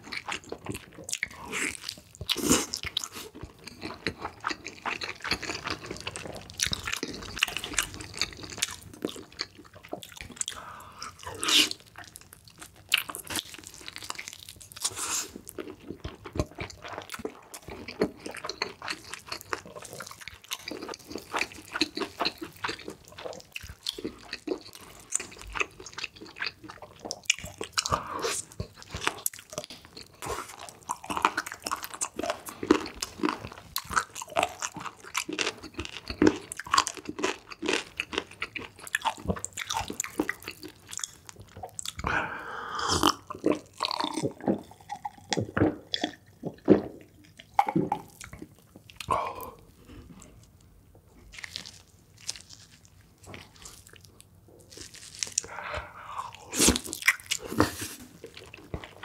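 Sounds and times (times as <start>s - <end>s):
wet chewing and mouth smacks: 0.0s - 42.1s, 43.0s - 59.0s.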